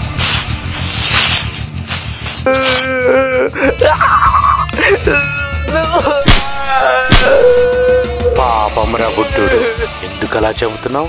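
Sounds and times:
background music: 0.0 - 11.0
wailing voice: 2.5 - 10.0.

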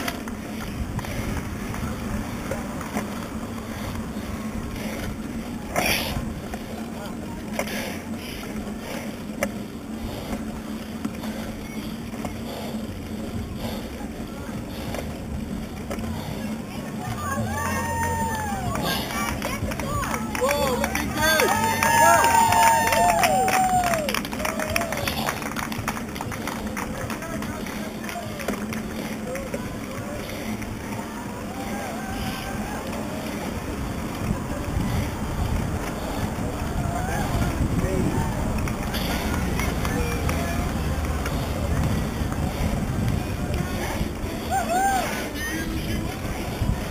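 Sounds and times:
indistinct voices: 0.0 - 46.9
low hum: 0.0 - 46.9
road and wind rumble: 0.0 - 46.9.

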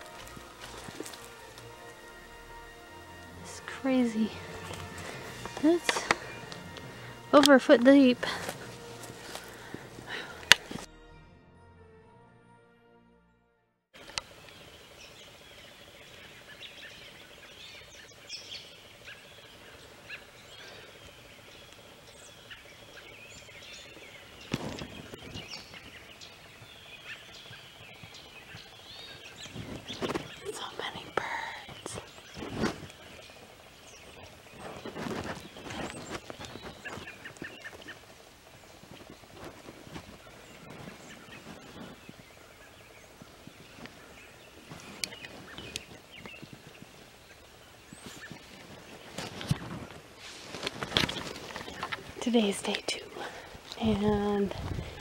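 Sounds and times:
birds chirping and calling: 0.0 - 10.9, 14.1 - 55.0
footsteps through dry grass and leaves: 0.0 - 10.9, 19.4 - 55.0.

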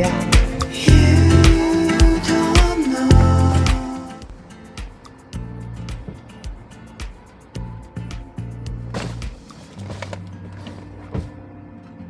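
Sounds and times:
faint background music: 0.0 - 12.0
groceries packed into cardboard box: 8.9 - 11.4.

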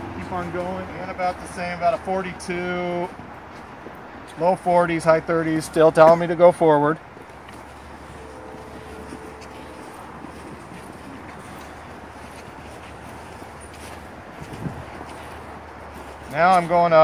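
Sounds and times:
footsteps on snow: 0.0 - 17.0
outdoor background noise: 0.0 - 17.0.

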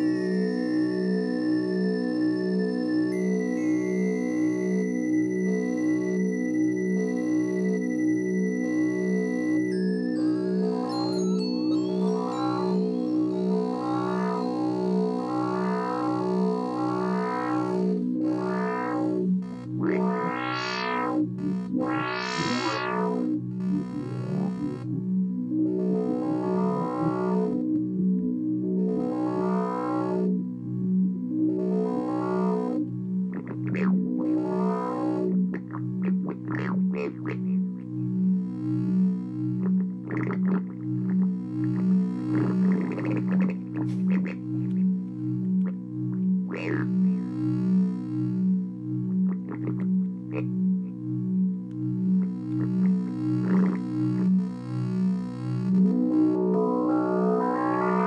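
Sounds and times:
pulsing low synth drone: 0.0 - 58.0
synth filter sweeps: 0.0 - 58.0.

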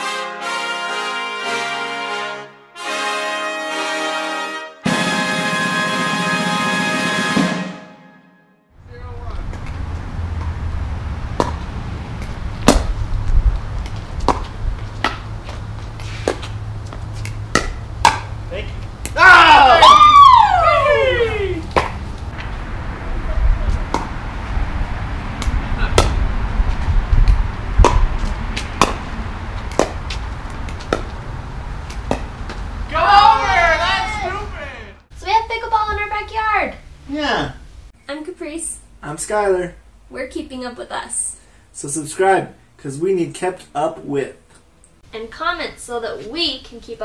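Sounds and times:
music: 0.0 - 8.7
steady low rumble: 8.8 - 19.2, 21.6 - 32.9
paddles hitting plastic ball: 11.4 - 11.6, 12.2 - 13.0, 13.8 - 15.3, 17.2 - 18.4, 21.7 - 22.0, 27.2 - 31.2, 31.8 - 32.7.

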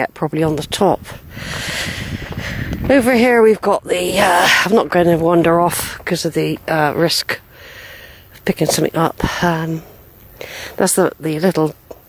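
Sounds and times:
low rumble: 0.5 - 10.2
air rushing on microphone: 0.8 - 6.9.

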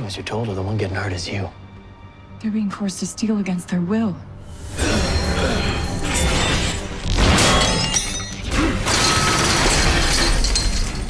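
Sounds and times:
dramatic action music: 0.0 - 11.0.

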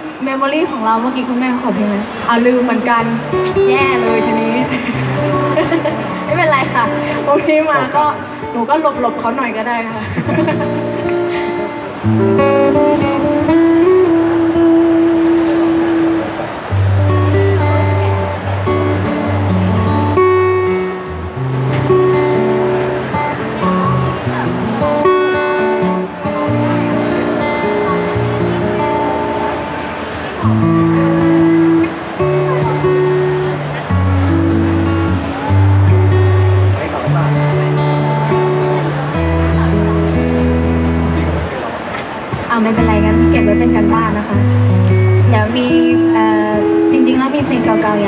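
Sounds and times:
acoustic guitar: 0.0 - 48.0
woman singing: 2.5 - 9.9, 45.3 - 48.0.

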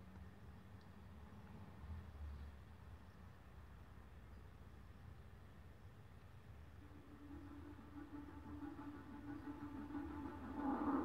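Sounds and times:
sustained low soundtrack tone: 6.8 - 11.0.

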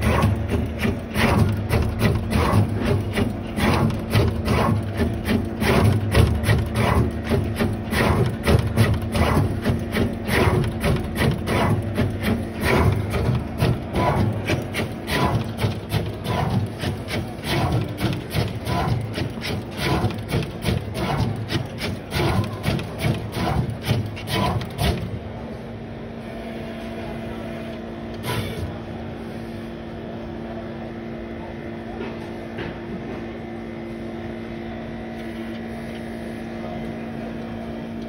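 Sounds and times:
machine head moving in rhythmic strokes: 0.0 - 25.2
machine humming: 0.0 - 25.4.

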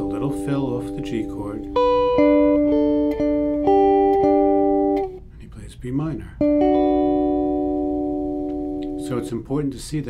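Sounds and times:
clean electric guitar chord ringing: 0.0 - 5.2, 6.4 - 9.8.

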